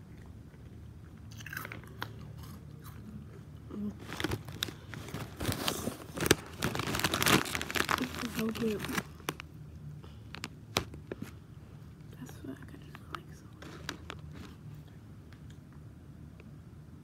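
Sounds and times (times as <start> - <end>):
chewing crunchy snack: 0.0 - 9.4, 13.5 - 15.6.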